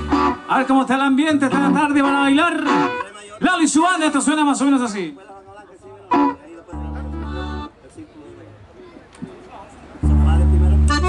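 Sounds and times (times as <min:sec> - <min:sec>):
stray instrument sounds: 0:00.0 - 0:03.2, 0:06.0 - 0:07.8, 0:10.0 - 0:11.0
electric guitar and bass chord: 0:10.0 - 0:11.0.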